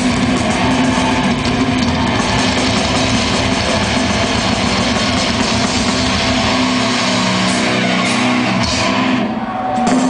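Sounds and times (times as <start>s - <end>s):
extreme metal band playing: 0.0s - 10.0s.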